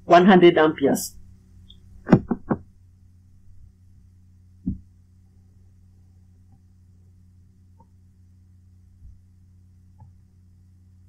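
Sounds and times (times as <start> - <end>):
faint steady hum: 0.0 - 11.0
quick knocks: 2.1 - 2.7.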